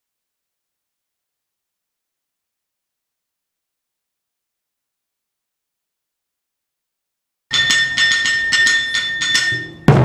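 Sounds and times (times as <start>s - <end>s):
drum stick strikes: 7.5s - 10.0s
high ringing tone: 7.5s - 10.0s.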